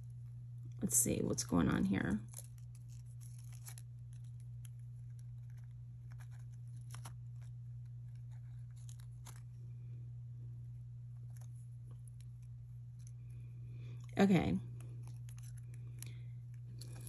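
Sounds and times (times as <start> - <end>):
low hum: 0.0 - 17.0
earring clicking and scratching: 2.3 - 9.5.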